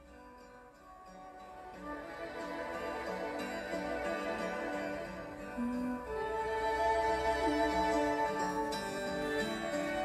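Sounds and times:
instrumental music with held string notes: 0:00.0 - 0:10.0.

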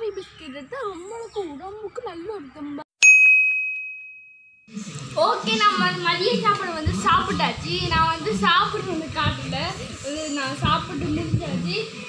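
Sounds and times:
bell-like ding: 0:03.0 - 0:04.7.

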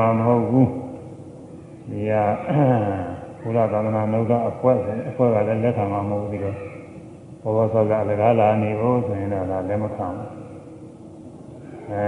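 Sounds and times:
man chanting: 0:01.9 - 0:06.9.

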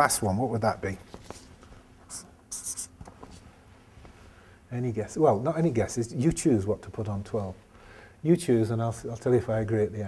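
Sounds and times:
marker pen writing on paper: 0:02.1 - 0:03.1.

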